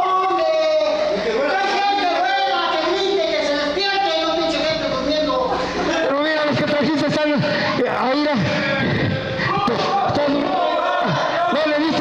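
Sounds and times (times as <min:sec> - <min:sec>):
men shouting: 0:00.0 - 0:12.0.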